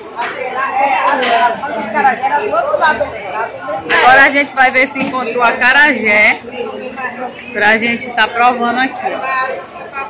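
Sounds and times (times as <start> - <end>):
overlapping conversational chatter: 0.0 - 10.0.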